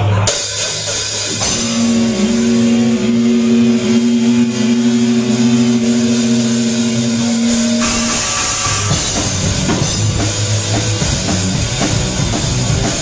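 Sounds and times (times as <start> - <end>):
rock band playing: 0.3 - 13.0
distorted electric guitar note: 1.2 - 11.6.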